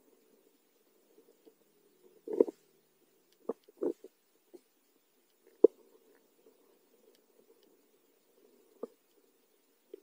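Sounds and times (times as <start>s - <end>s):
low underwater hum: 0.0s - 10.0s.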